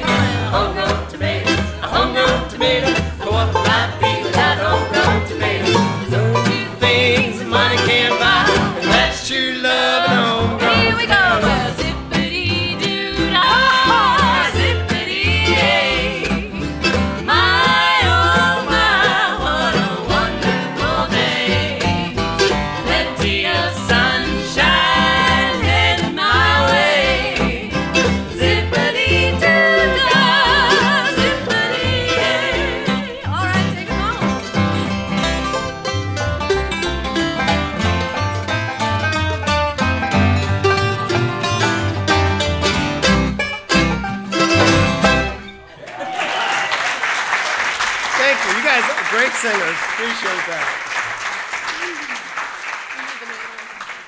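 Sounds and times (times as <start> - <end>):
bluegrass string band playing: 0.0 - 50.7.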